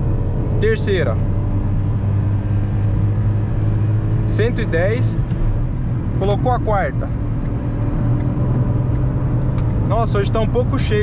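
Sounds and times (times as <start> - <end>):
car engine droning: 0.0 - 11.0
road noise: 0.0 - 11.0.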